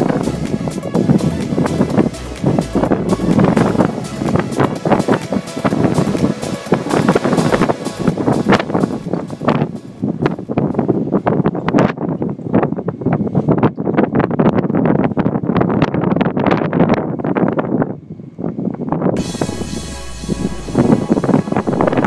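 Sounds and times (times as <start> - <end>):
wind buffeting microphone: 0.0 - 19.5.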